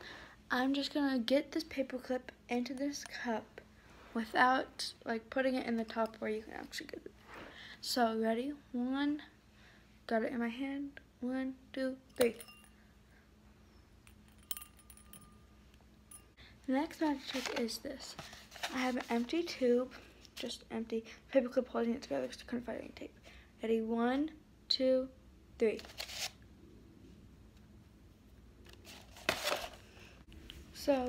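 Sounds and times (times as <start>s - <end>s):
paper rustling: 17.1s - 19.4s, 25.8s - 26.4s, 28.7s - 29.8s.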